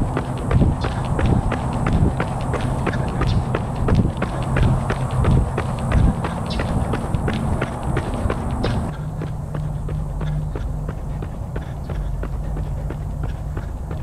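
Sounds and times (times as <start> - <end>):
low rumble: 0.0 - 14.0
running footsteps on pavement: 0.0 - 14.0.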